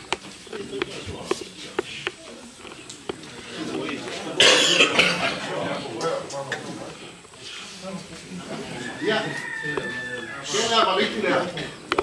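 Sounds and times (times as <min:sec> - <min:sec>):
low murmuring voices: 0:00.0 - 0:12.0
person coughing: 0:04.4 - 0:05.2.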